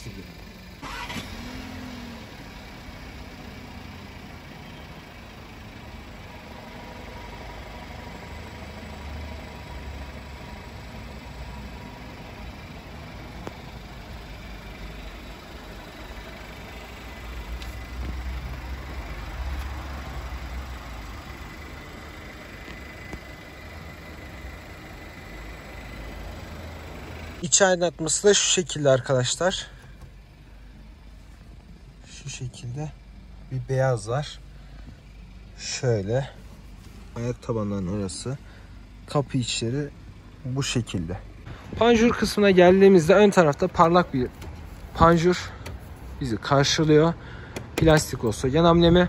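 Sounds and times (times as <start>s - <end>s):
car engine idling: 0.0s - 49.0s.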